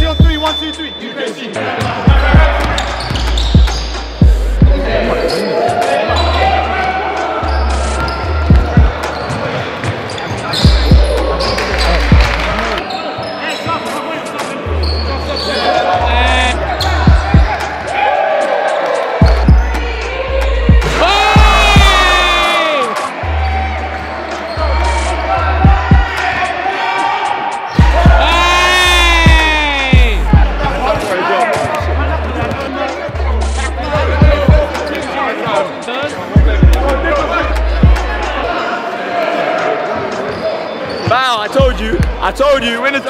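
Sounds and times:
hip-hop beat with deep bass: 0.0s - 9.4s, 10.6s - 12.8s, 16.0s - 26.6s, 27.2s - 38.6s, 41.5s - 42.7s
sneakers squealing: 0.0s - 43.0s.

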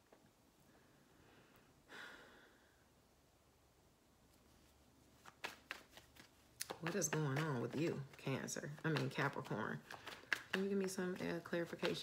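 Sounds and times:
cards being shuffled: 4.4s - 12.0s
sharp card snaps: 5.2s - 7.5s.

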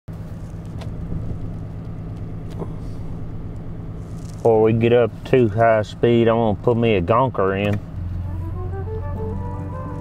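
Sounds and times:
engine and road drone: 0.1s - 10.0s.

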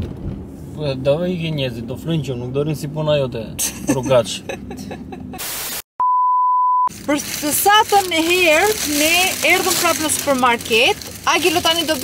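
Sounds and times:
hiss burst: 5.4s - 5.9s
pure-tone beep: 6.0s - 6.9s.

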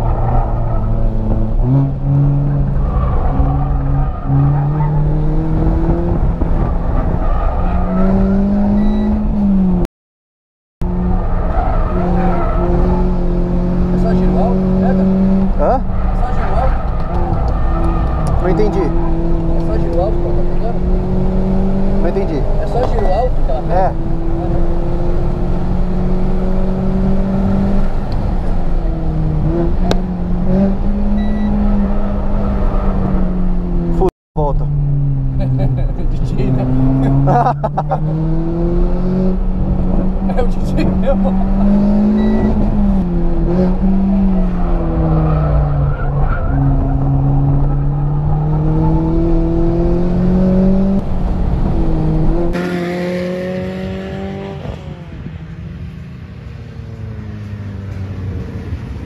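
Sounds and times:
car engine accelerating: 0.0s - 9.9s, 10.8s - 56.0s.

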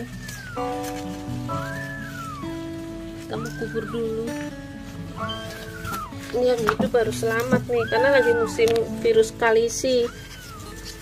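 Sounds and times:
background music with sustained notes: 0.0s - 11.0s
cat mewing: 5.2s - 6.4s, 7.3s - 8.9s, 9.8s - 11.0s.

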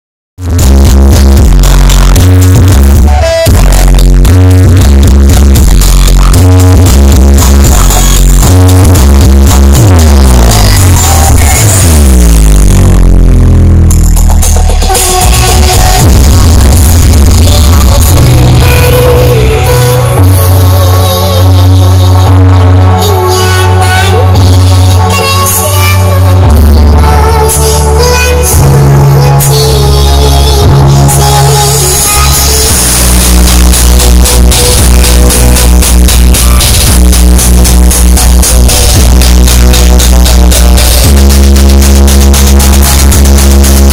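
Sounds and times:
loud electronic dance music: 0.4s - 43.9s.

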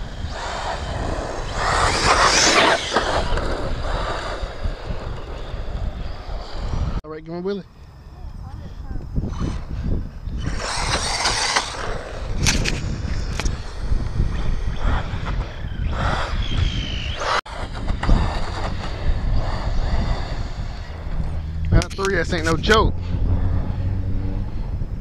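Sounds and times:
wind rumbling on microphone: 0.0s - 7.0s, 7.6s - 25.0s.

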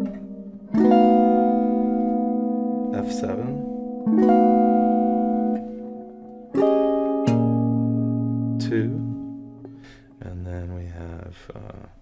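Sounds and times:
clean electric guitar chords: 0.0s - 10.4s.

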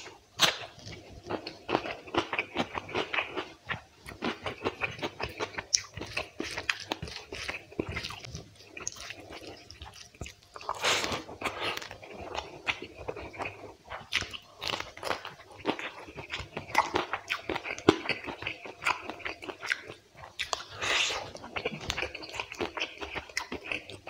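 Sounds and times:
close chewing and lip smacks: 0.4s - 24.0s.

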